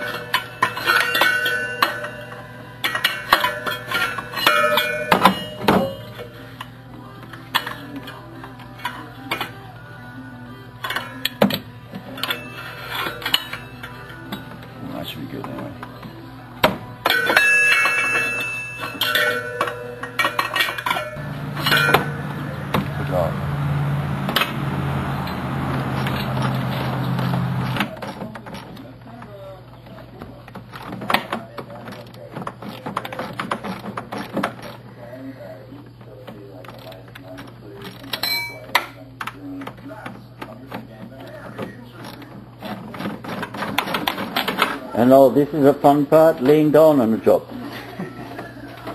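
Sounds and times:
metal tools clinking and clanking: 0:00.0 - 0:06.7, 0:10.8 - 0:16.1, 0:17.0 - 0:23.3, 0:25.2 - 0:34.9, 0:36.7 - 0:39.9.

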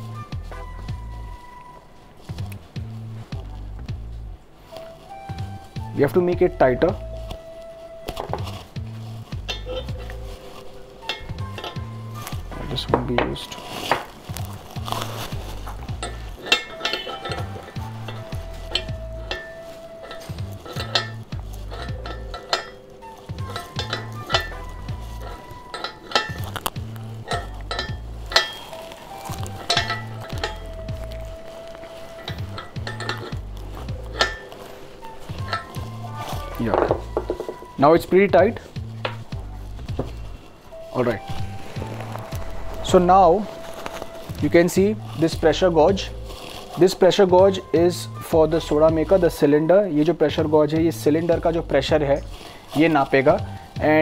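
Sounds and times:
background music with low beat: 0:00.0 - 0:54.0
spanner clinking on metal fitting: 0:11.1 - 0:11.9, 0:16.0 - 0:28.6, 0:29.6 - 0:30.8, 0:32.2 - 0:33.4, 0:34.1 - 0:34.5, 0:35.4 - 0:36.0.

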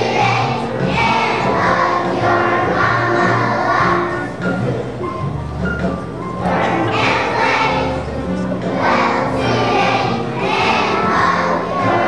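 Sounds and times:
children's choir singing: 0:00.0 - 0:04.6, 0:06.4 - 0:12.0
musical accompaniment: 0:00.0 - 0:12.0.

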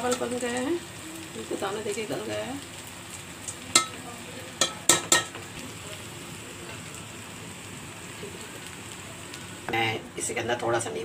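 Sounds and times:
metal spoon clinking against pot: 0:03.7 - 0:04.0, 0:04.6 - 0:05.3.

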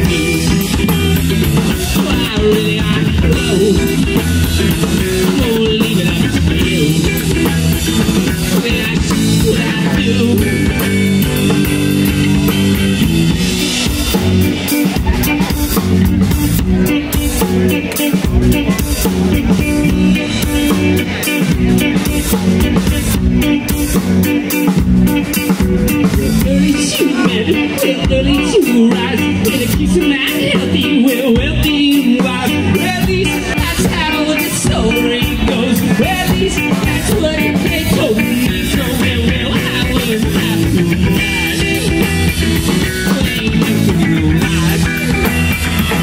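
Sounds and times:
rock band playing live: 0:00.0 - 0:46.0.

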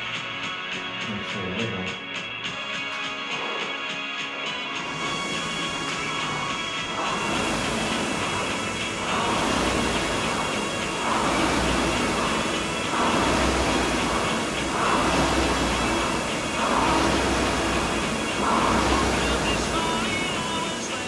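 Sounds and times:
rowing machine flywheel whooshing: 0:04.8 - 0:21.0.

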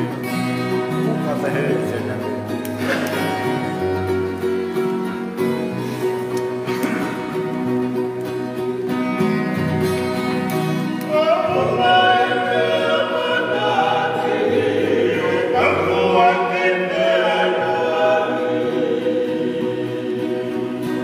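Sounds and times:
acoustic guitars playing: 0:00.0 - 0:21.0
men singing in harmony: 0:11.0 - 0:21.0.

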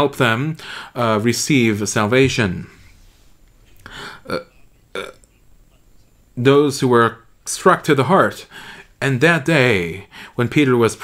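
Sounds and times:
man's throaty vocal sounds: 0:03.9 - 0:05.2.

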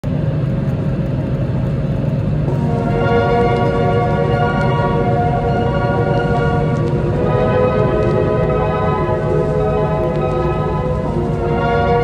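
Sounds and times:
airliner jet engine rumble: 0:00.0 - 0:12.0
music with held chords: 0:02.5 - 0:12.0.

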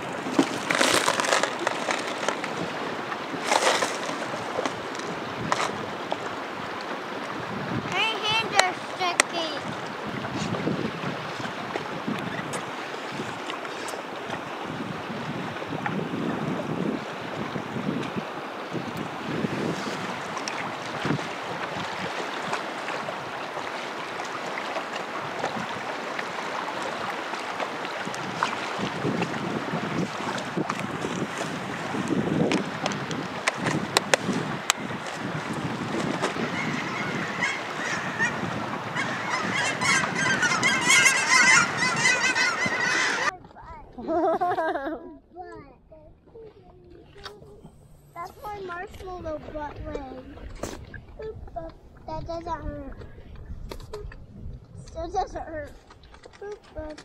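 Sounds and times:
river water rushing: 0:00.0 - 0:43.4
wind on microphone: 0:00.0 - 0:45.0, 0:45.9 - 0:57.0
geese honking: 0:36.4 - 0:43.3.

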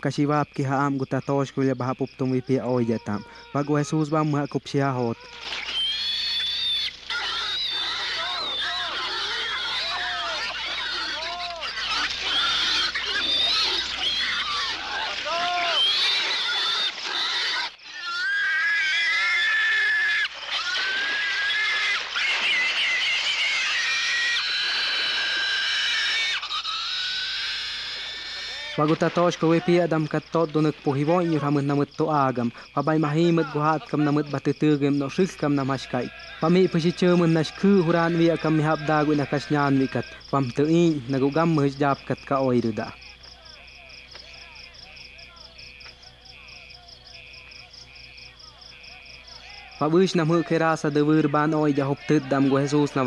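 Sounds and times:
man speaking: 0:00.0 - 0:05.2, 0:28.8 - 0:45.6, 0:48.8 - 0:53.0
crickets chirping: 0:00.0 - 0:53.0
pigs squealing: 0:02.4 - 0:42.5, 0:48.8 - 0:53.0.

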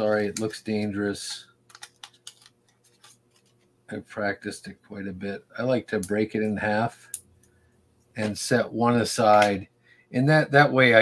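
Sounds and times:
clicks and crinkles of packaging: 0:01.7 - 0:03.7.

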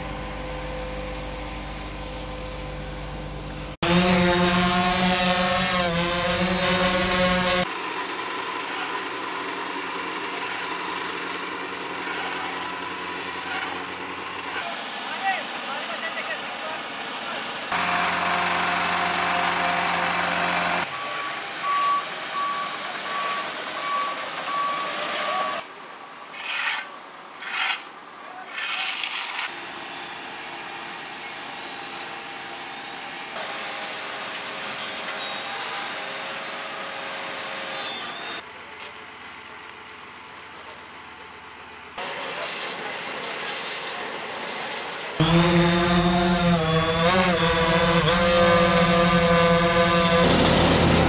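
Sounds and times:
back-up alarm beeping: 0:20.9 - 0:25.6
paver diesel engine running: 0:47.0 - 0:51.0
dump truck engine running: 0:47.5 - 0:51.0.

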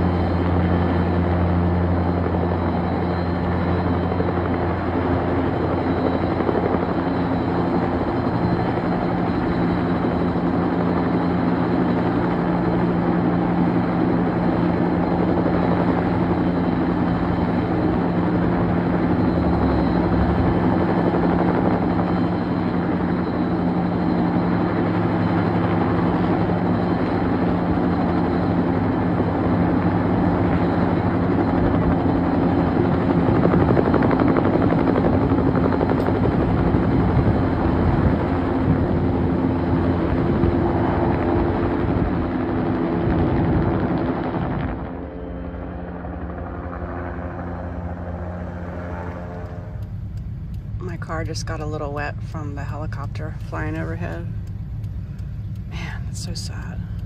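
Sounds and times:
helicopter rotor and engine: 0:00.0 - 0:57.0.

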